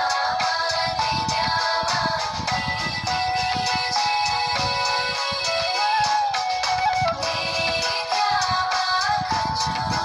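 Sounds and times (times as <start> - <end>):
rhythmic beat: 0.0 - 10.0
song with sliding melody: 0.0 - 10.0.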